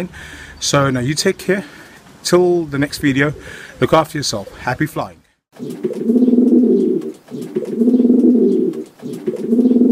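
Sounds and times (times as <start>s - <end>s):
pigeons cooing: 3.2s - 4.8s, 5.6s - 9.9s.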